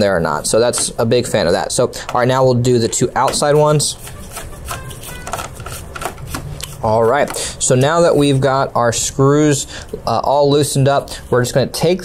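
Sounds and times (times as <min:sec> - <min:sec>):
screwdriver clicking and scraping: 0:04.0 - 0:06.8.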